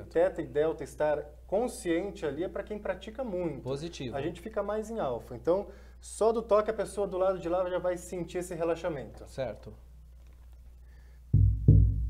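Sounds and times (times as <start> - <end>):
deep drum hits: 11.4 - 12.0.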